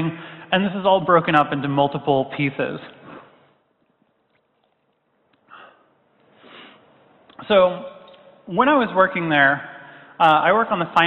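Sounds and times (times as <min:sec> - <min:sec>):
sniff at microphone: 0:06.4 - 0:06.9.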